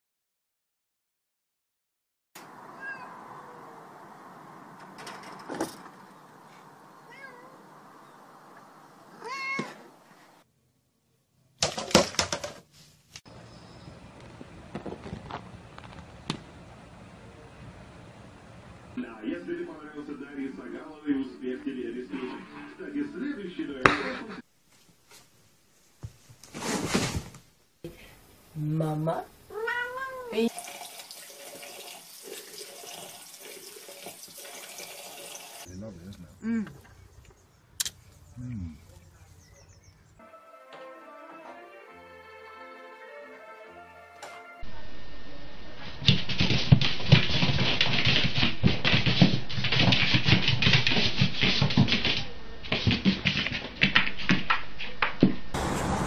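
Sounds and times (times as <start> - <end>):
cat meowing: 2.6 - 3.9, 7.0 - 7.6, 9.1 - 9.9, 29.5 - 30.5
knocks and clatter: 4.8 - 6.0, 11.6 - 12.6
running water hissing: 29.4 - 35.7.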